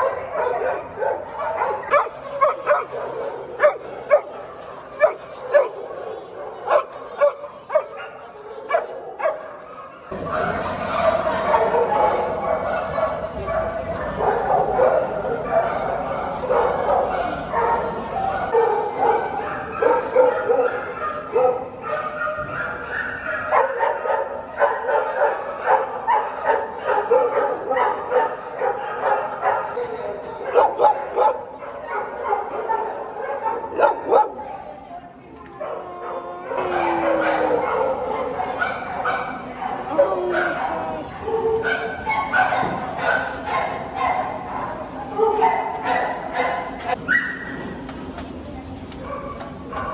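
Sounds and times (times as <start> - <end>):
dogs barking and yipping: 0.0 - 34.7, 35.6 - 47.6, 49.0 - 49.9.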